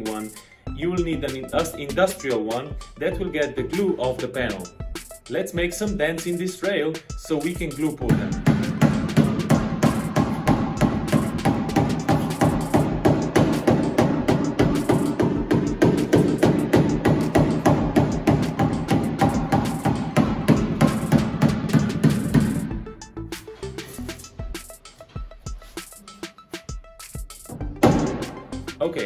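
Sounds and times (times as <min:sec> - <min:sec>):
fast drum beat music: 0:00.0 - 0:29.0.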